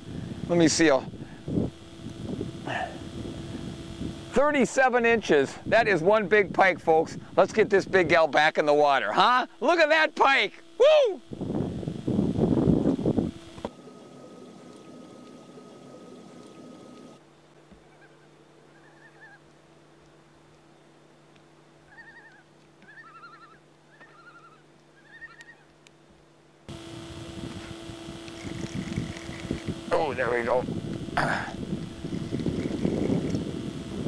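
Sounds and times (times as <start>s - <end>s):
faint steady hum: 0.0s - 34.0s
distant bird calls: 13.5s - 19.6s, 21.8s - 25.7s.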